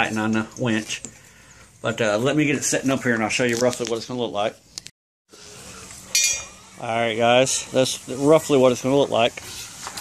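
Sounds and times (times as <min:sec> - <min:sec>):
faint steady hiss: 0:05.3 - 0:10.0
metal-on-metal clink: 0:06.1 - 0:06.6.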